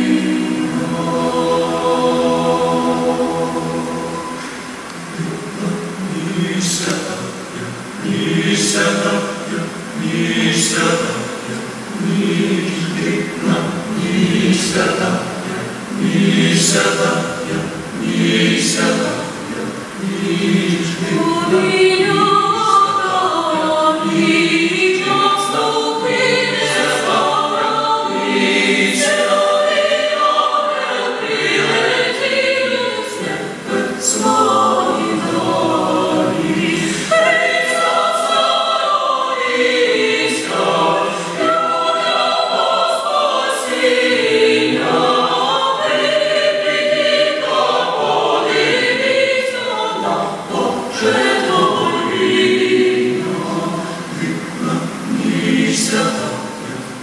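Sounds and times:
mixed choir singing a carol: 0.0s - 57.0s.

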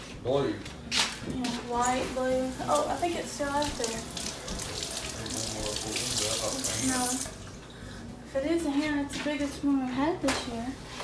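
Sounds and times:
water running from faucet into sink: 2.2s - 7.7s.

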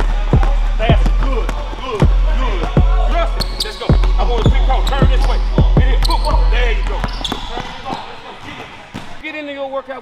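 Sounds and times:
voices: 0.0s - 10.0s
basketballs bouncing on wooden floor: 0.3s - 8.1s.

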